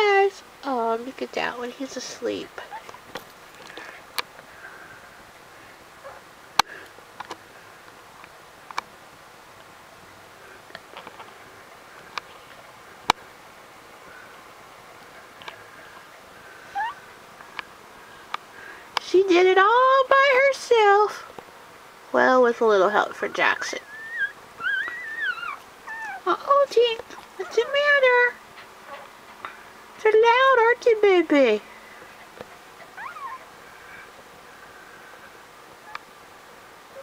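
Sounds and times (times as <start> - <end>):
puppy whining: 2.6 - 3.0, 16.0 - 17.1, 23.8 - 26.5, 27.1 - 28.1, 32.2 - 34.1
puppy squeaking: 16.8 - 17.0, 23.8 - 26.2, 32.8 - 33.4.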